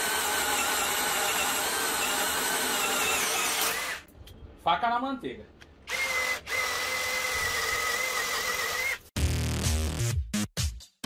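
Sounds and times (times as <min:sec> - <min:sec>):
cordless drill whine: 0:00.0 - 0:04.0, 0:05.9 - 0:09.0.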